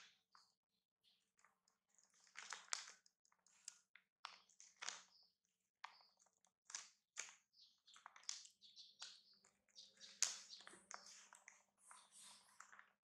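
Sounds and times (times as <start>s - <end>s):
plastic wrapper crinkling: 2.0s - 3.0s.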